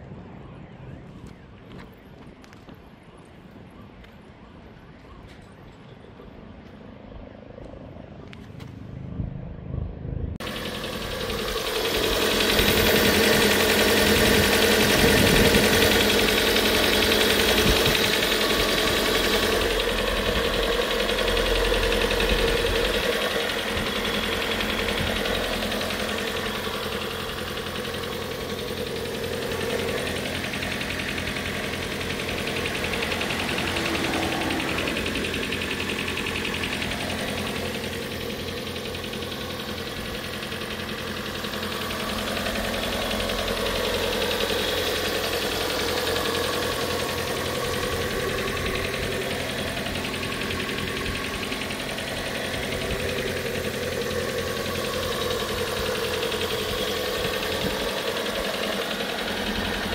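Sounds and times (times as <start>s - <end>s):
car engine idling: 10.3s - 59.9s.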